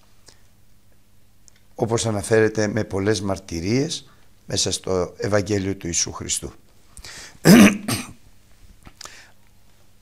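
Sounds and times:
man clearing his throat: 0:07.4 - 0:08.2.

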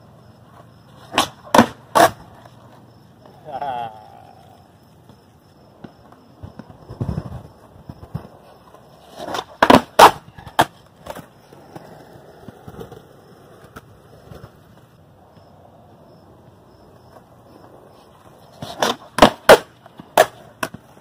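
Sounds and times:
skateboard wheels rolling on concrete: 0:00.0 - 0:21.0
skateboard pushes and clicks: 0:00.4 - 0:03.4, 0:04.9 - 0:15.4, 0:16.3 - 0:21.0
skateboard landing clacks: 0:00.6 - 0:03.4, 0:05.0 - 0:15.4, 0:18.5 - 0:21.0
skateboard knocks: 0:01.0 - 0:02.4, 0:05.0 - 0:14.9, 0:18.6 - 0:21.0.

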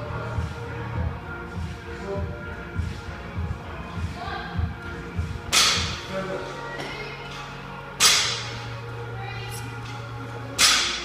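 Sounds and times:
music with thumping beat: 0:00.4 - 0:06.1.

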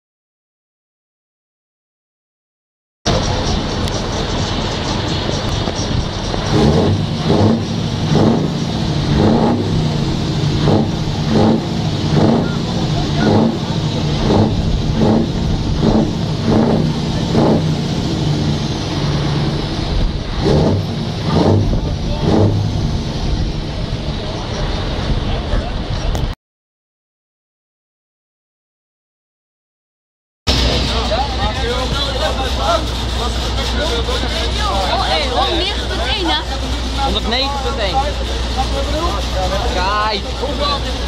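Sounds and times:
diesel truck engine revving: 0:03.1 - 0:26.3, 0:30.5 - 0:41.0.

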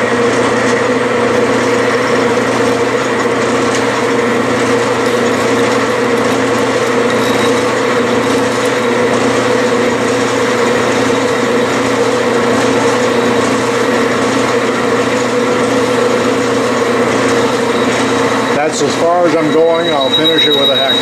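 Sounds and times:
metal lathe droning: 0:00.0 - 0:21.0
parting tool cutting metal: 0:04.5 - 0:10.9.

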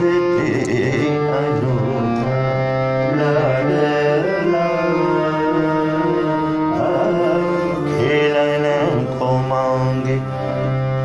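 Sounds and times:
harmonium drone: 0:00.0 - 0:11.0
man singing ornamented classical line: 0:00.0 - 0:11.0.

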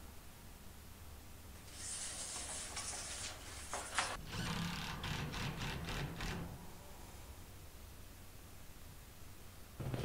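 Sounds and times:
metal panel scraping and rattling: 0:01.7 - 0:04.2.

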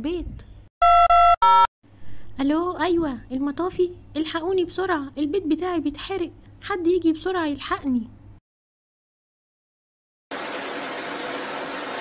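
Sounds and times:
fire hose spraying water: 0:10.3 - 0:12.0.

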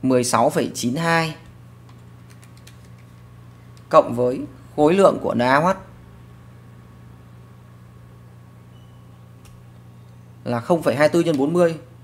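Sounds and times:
low electrical hum with hiss: 0:00.0 - 0:12.0.

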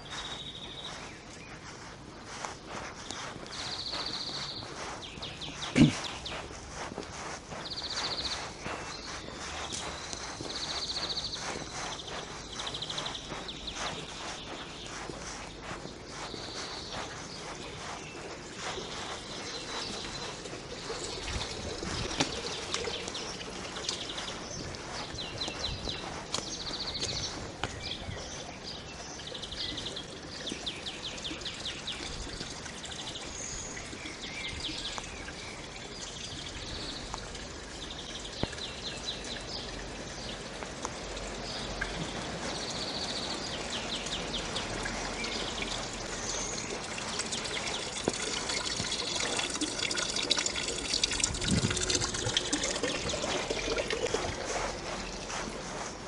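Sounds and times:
small birds chirping: 0:00.0 - 0:56.0
water splashing from fountain: 0:00.0 - 0:56.0.

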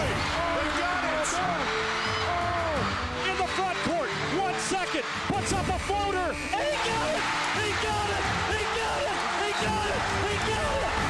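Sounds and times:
excited voices shouting: 0:00.0 - 0:11.0
music: 0:00.0 - 0:11.0.

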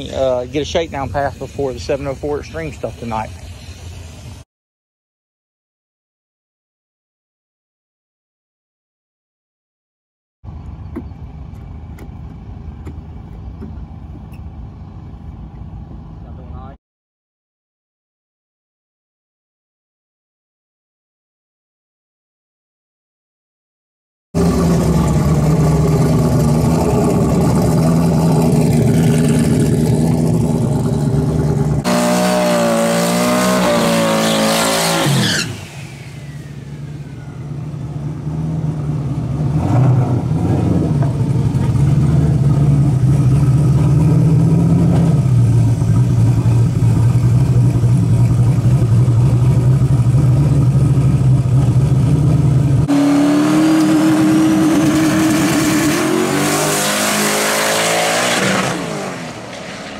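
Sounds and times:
drag car engine revving: 0:00.0 - 0:04.4, 0:24.4 - 0:59.9.

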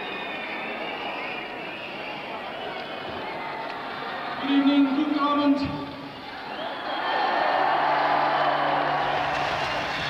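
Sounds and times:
crowd noise in a hall: 0:00.0 - 0:10.0.

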